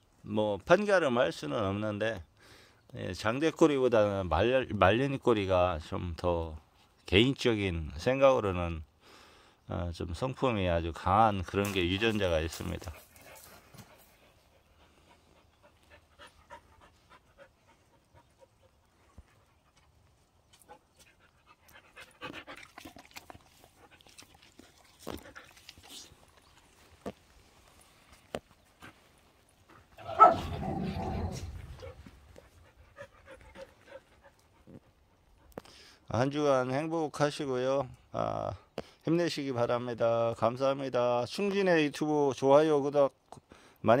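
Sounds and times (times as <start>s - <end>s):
dogs panting: 12.6s - 27.2s, 31.2s - 36.0s.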